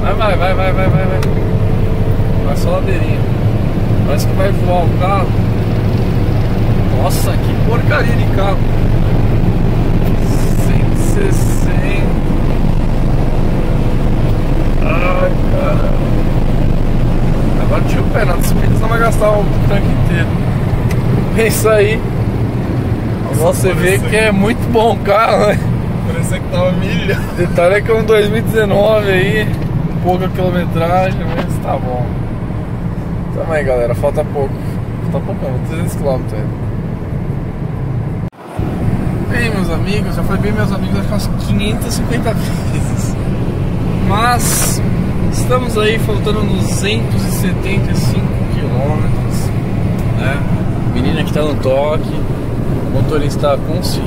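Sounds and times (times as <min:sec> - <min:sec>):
wind noise: 0:00.0 - 0:27.4
loud engine drone: 0:00.0 - 0:34.9, 0:37.1 - 0:54.0.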